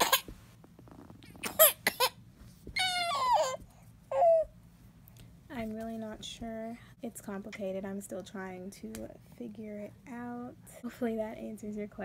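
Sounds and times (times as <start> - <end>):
baby squealing: 0.0 - 0.2, 1.4 - 2.2, 2.8 - 4.5.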